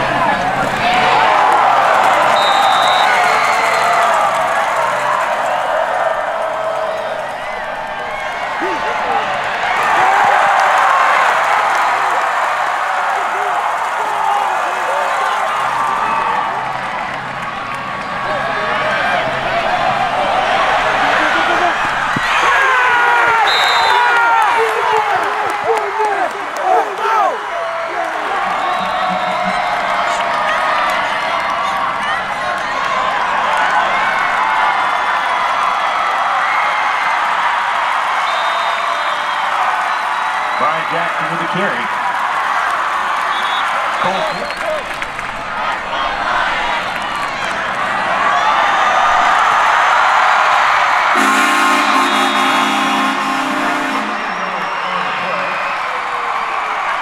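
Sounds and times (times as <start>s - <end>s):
stadium crowd shouting and cheering: 0.0s - 57.0s.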